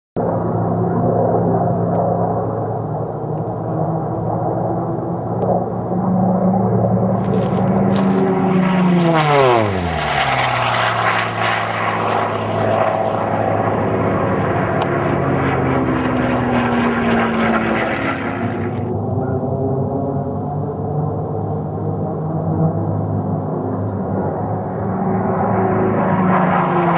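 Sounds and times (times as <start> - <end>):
plane passing with pitch drop: 0.2 - 26.9
propeller plane engines droning: 0.2 - 26.9.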